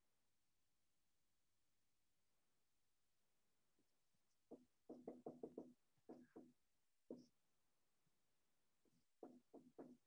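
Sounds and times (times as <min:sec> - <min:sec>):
marker squeaking on whiteboard: 0:04.4 - 0:07.4.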